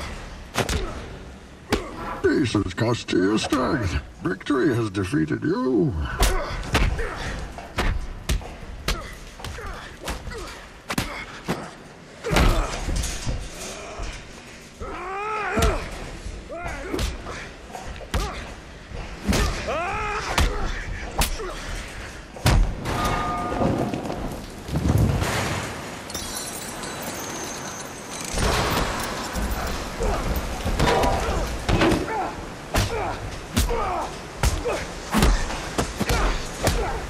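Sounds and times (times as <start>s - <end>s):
water cascading onto metal grating: 12.0s - 37.0s.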